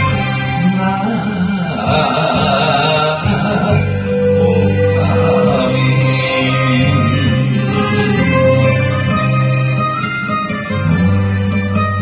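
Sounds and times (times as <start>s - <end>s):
man singing karaoke: 0.0s - 9.3s
karaoke backing track: 0.0s - 12.0s.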